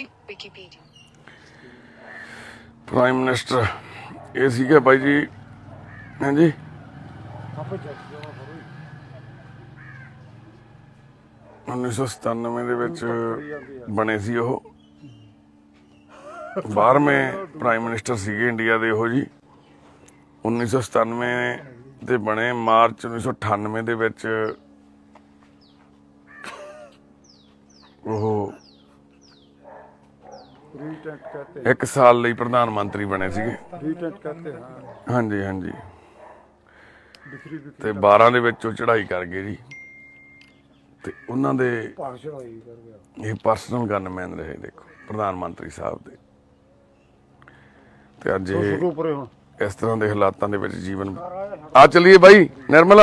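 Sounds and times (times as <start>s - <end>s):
harsh crow-like caw: 1.3s - 2.8s, 5.5s - 7.2s, 8.7s - 10.6s, 13.3s - 14.0s, 26.2s - 27.0s, 36.7s - 38.0s, 41.0s - 41.6s, 44.8s - 45.6s, 52.4s - 53.0s
man speaking: 2.9s - 5.3s, 11.7s - 14.7s, 20.4s - 24.6s, 28.0s - 28.6s, 30.7s - 36.0s, 37.3s - 39.7s, 48.2s - 53.0s
lower bird call: 5.8s - 7.2s, 8.8s - 10.6s, 14.8s - 16.4s
faint voices talking: 6.1s - 15.8s
low steady hum: 9.0s - 53.0s.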